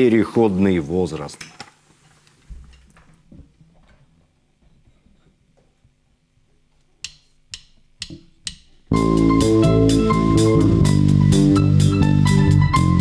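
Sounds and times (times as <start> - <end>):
live band playing: 8.9 - 13.0.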